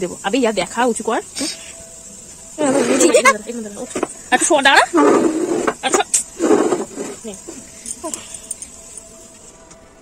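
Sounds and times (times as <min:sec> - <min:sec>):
faint high hiss: 0:00.0 - 0:10.0.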